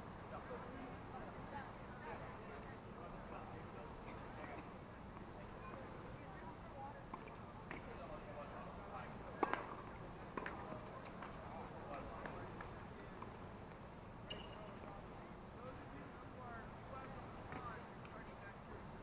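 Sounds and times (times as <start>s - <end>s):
distant people talking: 0.0s - 19.0s.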